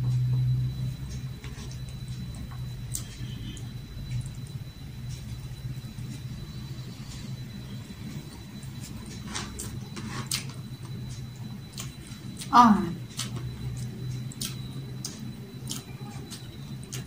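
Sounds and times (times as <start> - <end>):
steady low hum: 0.0 - 17.0
person chewing food: 0.1 - 17.0.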